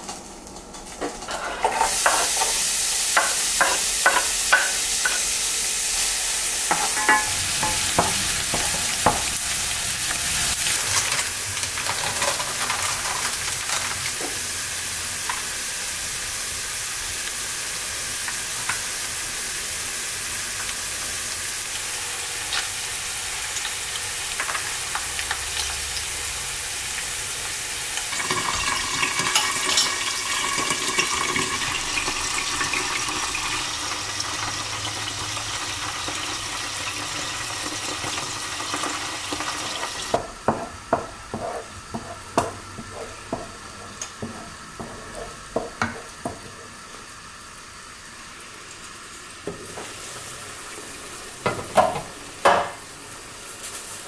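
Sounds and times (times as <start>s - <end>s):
food sizzling in a pan: 0.0s - 54.0s
stirring and scraping in pan: 1.2s - 2.6s, 40.5s - 46.6s.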